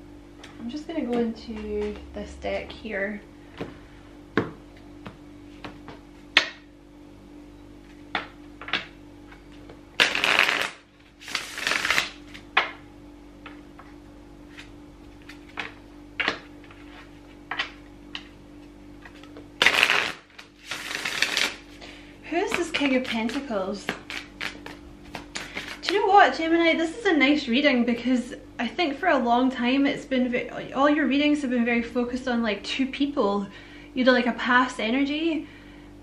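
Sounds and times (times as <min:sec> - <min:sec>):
cards rustling in shuffle: 0:22.5 - 0:26.0.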